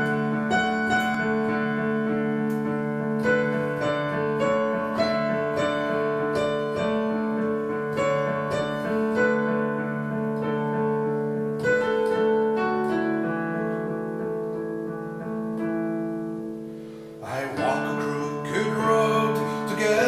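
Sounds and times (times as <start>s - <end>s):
digital piano chords: 0.0s - 20.0s.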